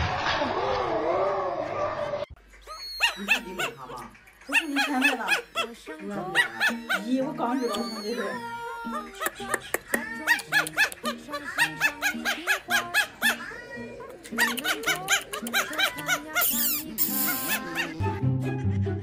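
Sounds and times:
high squeaky voice: 2.6s - 3.8s, 4.5s - 18.1s.

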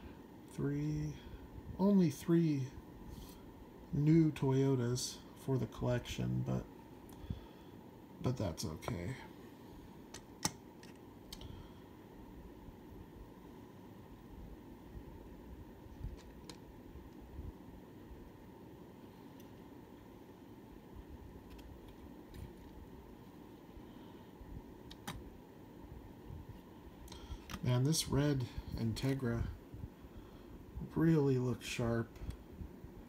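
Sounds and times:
room hum: 0.0s - 33.0s.

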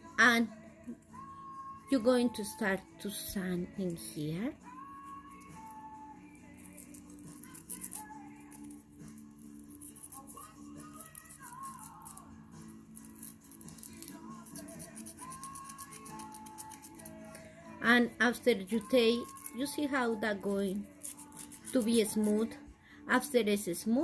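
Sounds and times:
soft background music: 0.0s - 24.0s
sandpaper scratching on metal: 13.0s - 17.1s.

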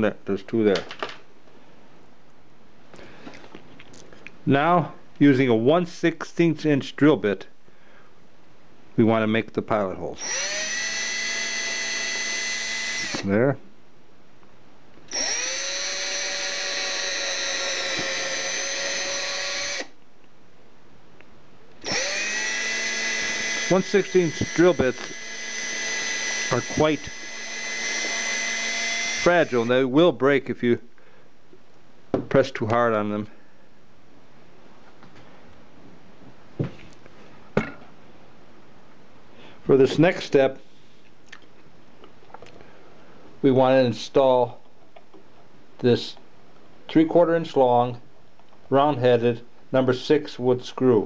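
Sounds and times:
steady faint hiss: 0.0s - 10.2s, 29.3s - 51.0s
cordless drill boring into wood: 10.2s - 13.3s, 15.1s - 20.0s, 21.8s - 29.8s.

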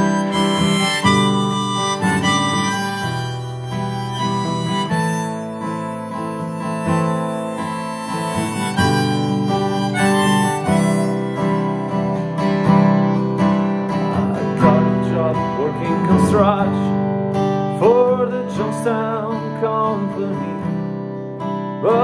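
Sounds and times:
harmonica holding long notes: 0.0s - 13.4s
strummed acoustic guitar: 0.0s - 22.0s.

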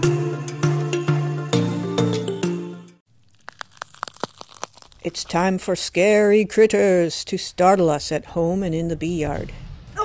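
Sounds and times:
sharp crackling clicks: 3.3s - 5.4s.

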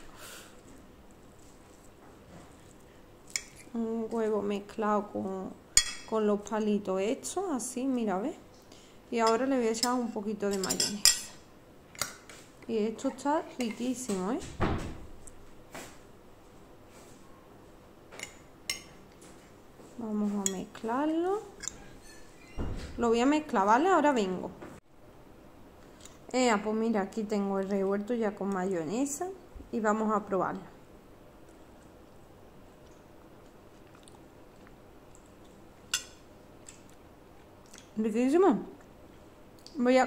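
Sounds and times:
fork scraping a plate: 21.6s - 22.5s
person chewing soft food: 31.4s - 37.9s.

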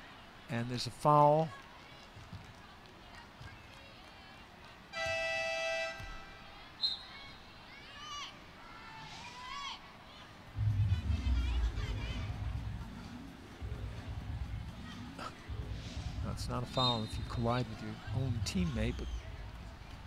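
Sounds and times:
arena buzzer horn: 5.0s - 6.4s
loud low rumble: 10.6s - 20.0s.

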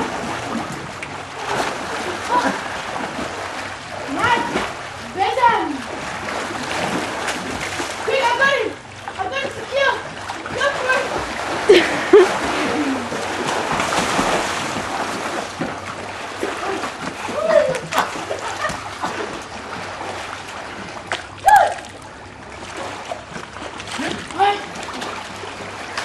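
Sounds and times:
water splashing in pool: 0.0s - 26.0s
swimmers shouting: 1.3s - 13.8s, 16.4s - 19.7s, 21.3s - 22.0s.

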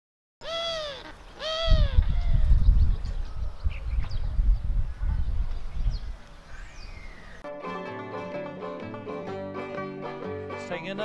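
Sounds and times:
gull crying: 0.4s - 2.5s
faint high bird chirps: 0.4s - 7.4s
wind buffeting microphone: 1.4s - 7.4s.

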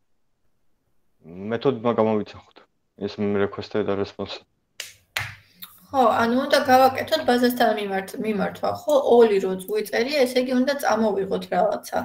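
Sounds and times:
woman speaking: 5.6s - 12.0s.

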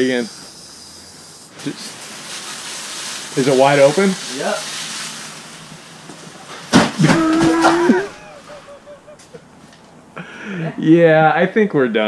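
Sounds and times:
garden hose spraying: 0.0s - 9.3s.

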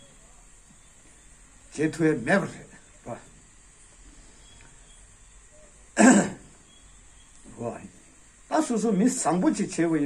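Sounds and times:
man clearing his throat: 6.0s - 6.6s.

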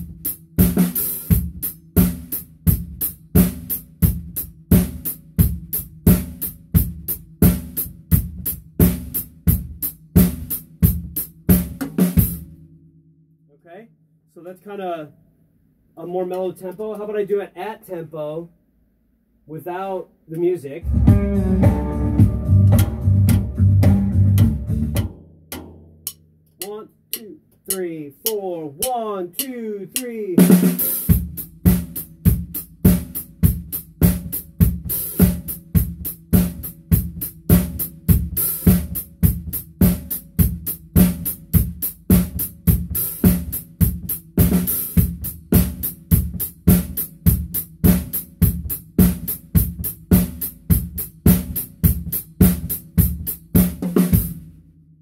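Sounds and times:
drum kit playing rock groove: 0.0s - 12.7s, 20.4s - 54.6s
music: 0.0s - 14.0s, 20.8s - 28.9s, 30.4s - 55.0s.

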